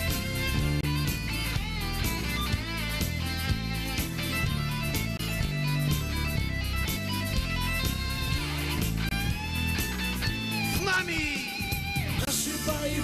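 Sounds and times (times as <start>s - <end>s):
bass guitar: 0.0s - 13.0s
electric guitar lead line: 0.0s - 13.0s
steady drum beat: 0.0s - 13.0s.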